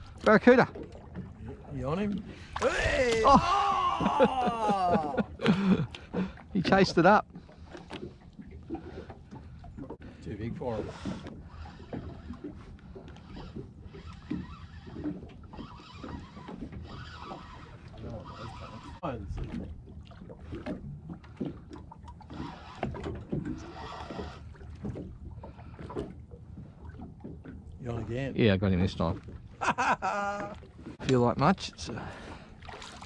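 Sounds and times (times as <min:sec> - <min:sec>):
water noise: 0:00.0 - 0:33.0
wind: 0:00.0 - 0:33.0
men talking indistinctly: 0:00.2 - 0:00.8, 0:01.6 - 0:03.5, 0:06.5 - 0:07.2, 0:10.2 - 0:11.1, 0:18.0 - 0:19.4, 0:27.8 - 0:29.3, 0:31.0 - 0:32.2.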